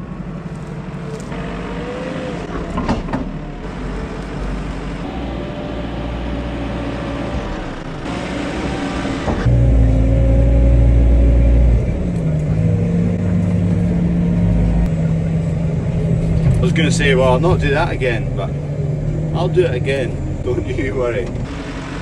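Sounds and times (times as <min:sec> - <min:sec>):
diesel engine under load: 0:00.0 - 0:22.0
engine drone inside cab: 0:00.0 - 0:22.0.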